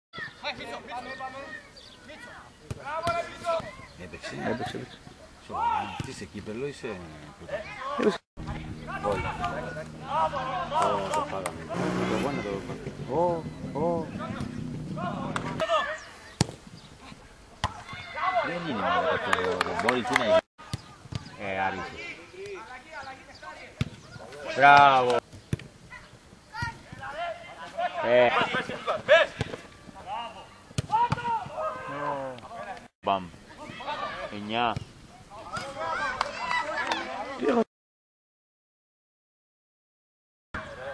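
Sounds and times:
footballers shouting: 7.6s - 16.2s, 17.6s - 20.4s, 26.5s - 32.9s, 33.5s - 34.5s, 35.3s - 37.5s.

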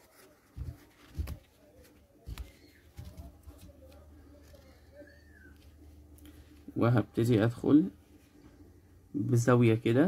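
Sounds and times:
soft bumps of handling: 0.2s - 4.7s.

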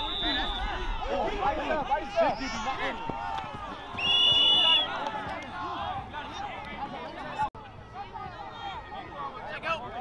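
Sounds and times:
referee's whistle blast: 0.0s - 0.9s, 4.0s - 5.0s
people talking and calling out: 0.0s - 10.0s.

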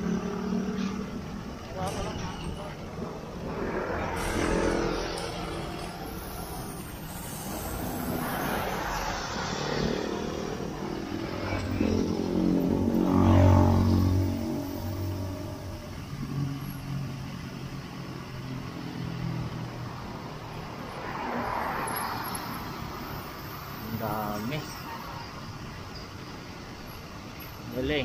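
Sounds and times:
vehicle engines passing: 0.0s - 28.0s
tyres hissing on wet road: 3.4s - 11.6s, 12.2s - 28.0s.

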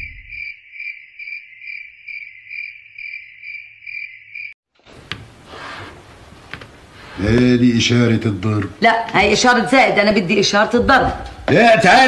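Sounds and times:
cricket chirping: 0.0s - 4.6s
room hiss: 4.8s - 9.6s.

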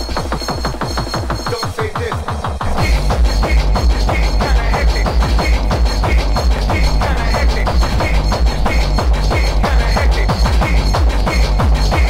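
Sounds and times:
rave dance music: 0.0s - 12.0s.

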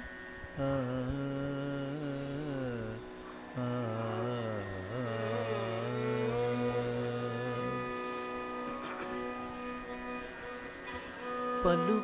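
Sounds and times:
steady drone: 0.0s - 12.0s
man singing long notes: 0.6s - 8.8s, 11.6s - 12.0s.

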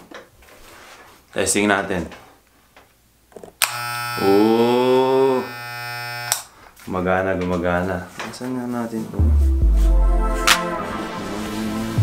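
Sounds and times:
electric hair clippers buzzing: 3.6s - 6.5s.

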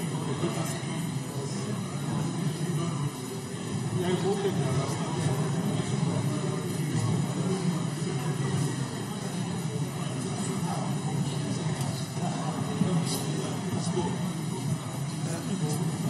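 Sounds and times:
murmur of many people talking: 0.0s - 16.0s.

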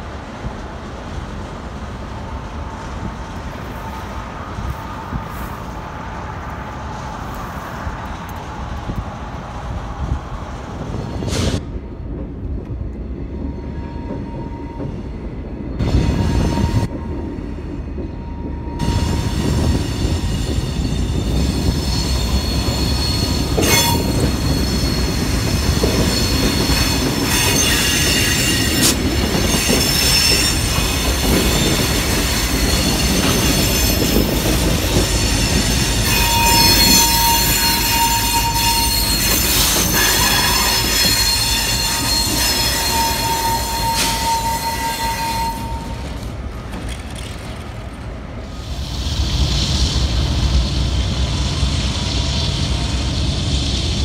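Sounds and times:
diesel locomotive engines rumbling: 0.0s - 54.0s
steel wheels squealing on rails: 2.1s - 11.8s, 13.3s - 54.0s.

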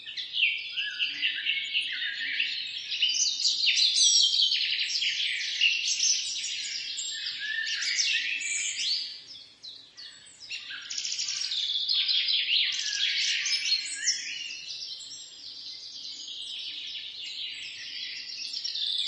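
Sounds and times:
small birds chirping and trilling: 0.0s - 19.0s.

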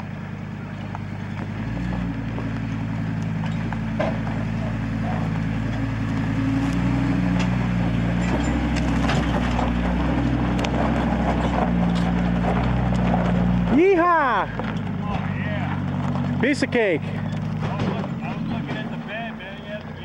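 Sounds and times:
truck engine under load: 0.0s - 20.0s
tyres crackling over gravel: 0.0s - 20.0s.

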